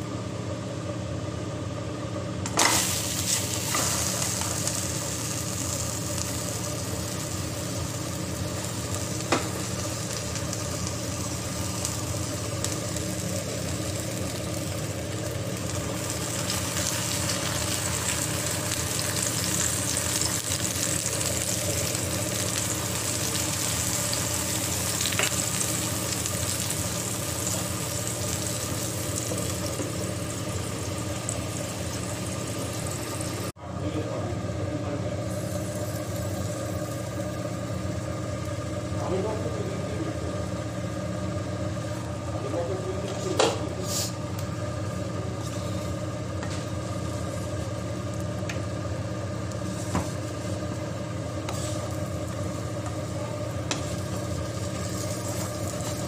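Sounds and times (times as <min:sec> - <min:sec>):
omelette sizzling in pan: 0:02.5 - 0:33.6, 0:35.3 - 0:39.0, 0:43.8 - 0:56.0.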